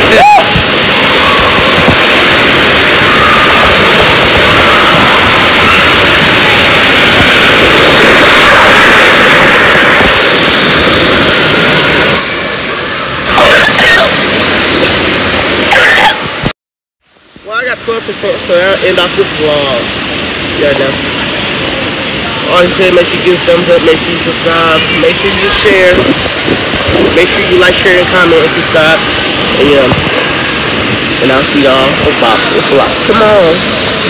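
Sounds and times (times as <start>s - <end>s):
pool water rushing: 0.0s - 16.5s, 17.1s - 34.0s
voices: 20.5s - 30.3s.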